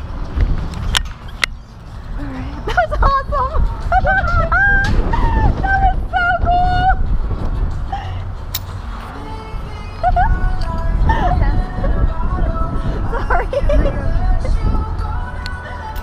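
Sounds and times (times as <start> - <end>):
wind rushing over microphone: 0.0 - 16.0
voices: 2.1 - 7.1, 9.0 - 16.0.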